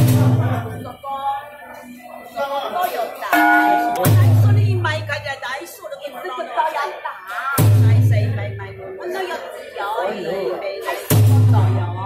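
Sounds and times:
voices: 0:00.2 - 0:12.0
bell ringing: 0:03.3 - 0:04.4.

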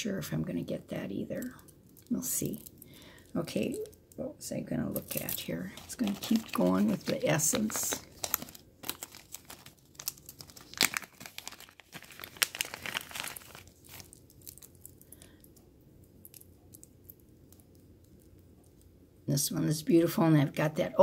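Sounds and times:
plastic bag crinkling: 0:04.8 - 0:15.6.

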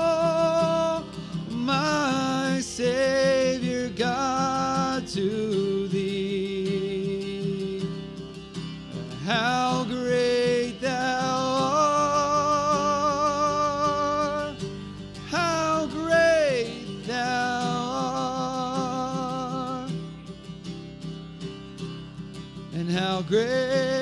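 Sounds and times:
guitar accompaniment: 0:00.0 - 0:24.0.

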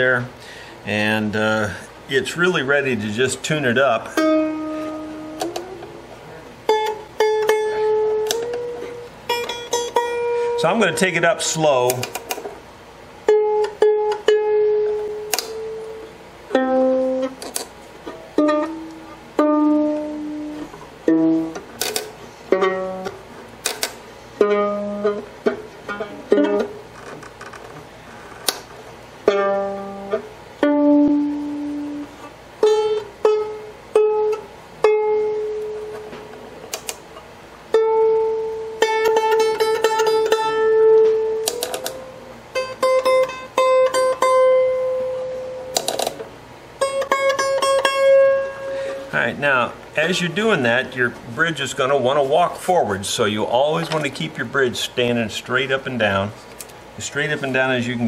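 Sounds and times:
violin strings plucked: 0:03.7 - 0:12.5, 0:13.3 - 0:27.8, 0:28.4 - 0:37.0, 0:37.7 - 0:52.5.

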